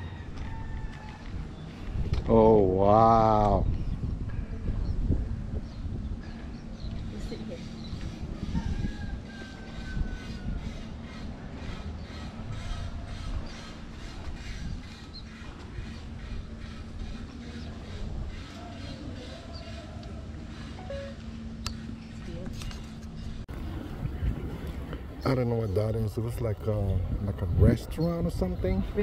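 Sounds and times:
low hum and rumble: 0:00.0 - 0:29.0
faint indistinct voices: 0:16.8 - 0:21.3.

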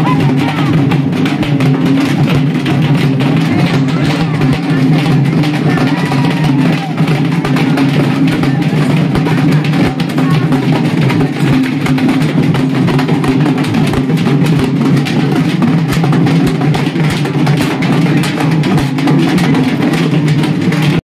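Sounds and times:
double-headed drums beaten fast: 0:00.0 - 0:21.0.

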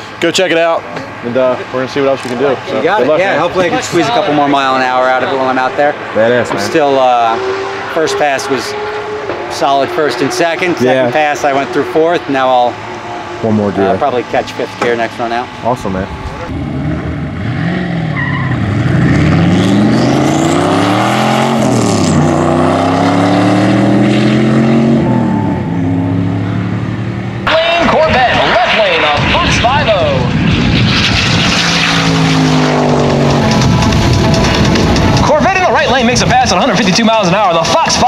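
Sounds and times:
race car engines accelerating: 0:00.0 - 0:38.0.

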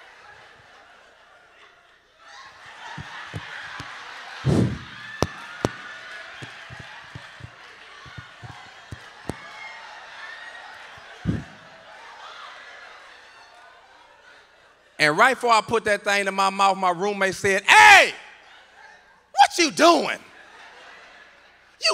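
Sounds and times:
audience laughing and murmuring: 0:00.3 - 0:15.0
sharp claps: 0:02.9 - 0:09.7
heavy thumps: 0:04.5 - 0:09.4.

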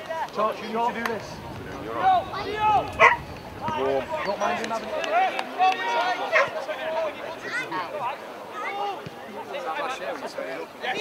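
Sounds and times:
men calling out: 0:00.8 - 0:06.6
dog barking: 0:03.0 - 0:03.3.

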